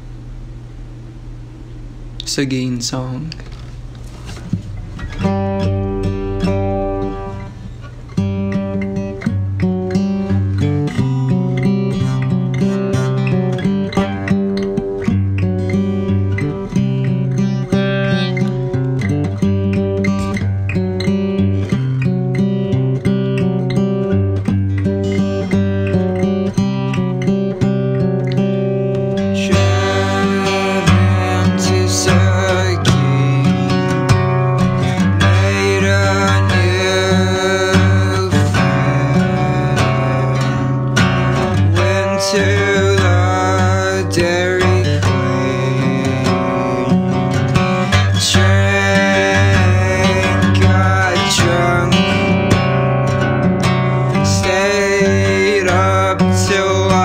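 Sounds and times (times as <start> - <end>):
acoustic guitar strumming: 2.5 - 57.0.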